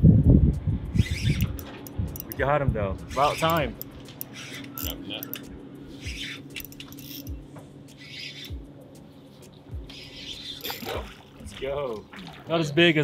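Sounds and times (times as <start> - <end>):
fish splashing at water surface: 10.6 - 12.6.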